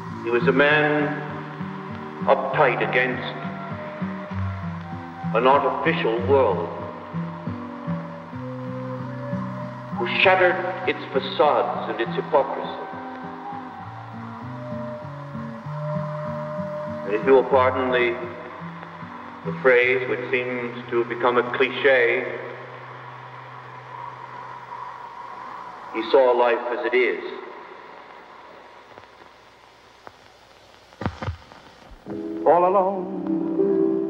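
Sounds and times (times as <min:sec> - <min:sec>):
background music low held notes: 0:00.0 - 0:29.5, 0:31.2 - 0:34.0
faint hiss: 0:00.0 - 0:34.0.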